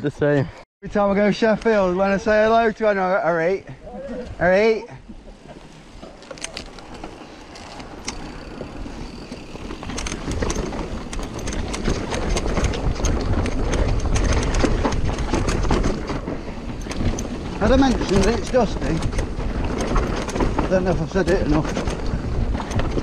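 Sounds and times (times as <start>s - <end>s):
bike tyres rolling over dirt: 5.2s - 23.0s
bike chain and frame rattling: 5.4s - 23.0s
wind on microphone: 6.2s - 23.0s.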